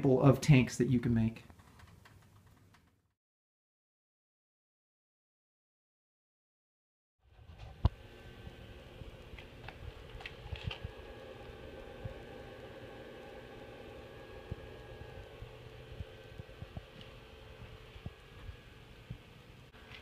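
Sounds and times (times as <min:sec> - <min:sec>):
faint electrical hum and hiss: 0:00.0 - 0:02.9, 0:07.3 - 0:20.0.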